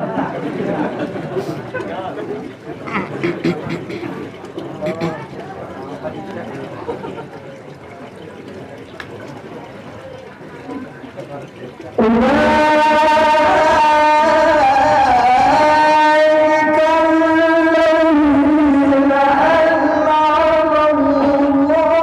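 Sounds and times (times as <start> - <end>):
murmur of voices: 0.0 - 22.0
man reciting over loudspeaker: 12.0 - 22.0.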